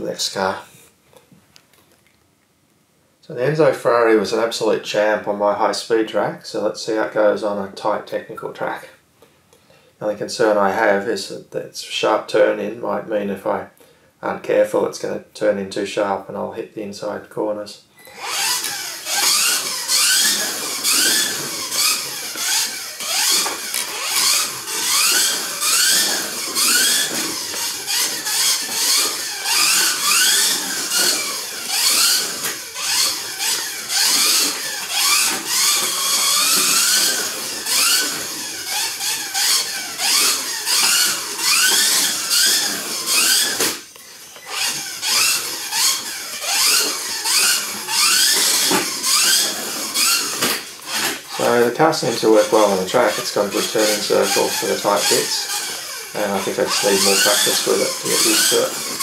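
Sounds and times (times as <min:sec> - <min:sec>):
rc car electric motor whining: 0:18.0 - 0:59.0.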